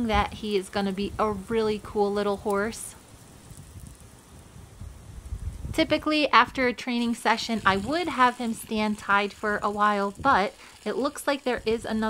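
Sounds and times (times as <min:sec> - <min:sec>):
garden hose spraying water: 0:00.0 - 0:12.0
wind rumbling on microphone: 0:00.0 - 0:12.0.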